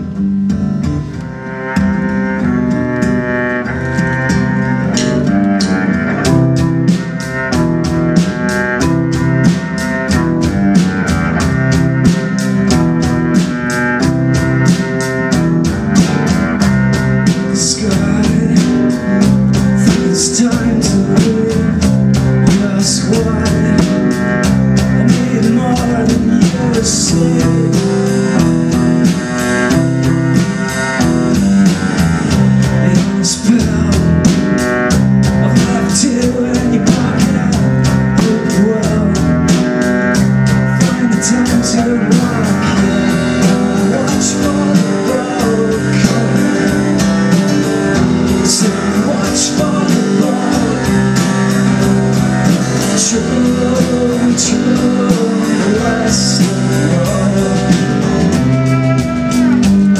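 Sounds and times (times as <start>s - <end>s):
acoustic guitar: 0.0s - 59.9s
cello: 0.0s - 59.9s
drum kit with cymbals: 0.0s - 59.9s
electric guitar: 0.0s - 59.9s.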